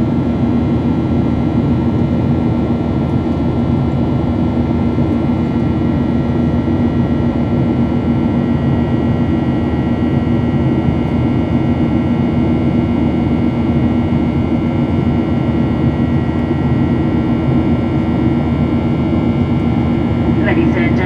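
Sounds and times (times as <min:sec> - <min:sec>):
jet engine roar in cabin: 0:00.0 - 0:21.0.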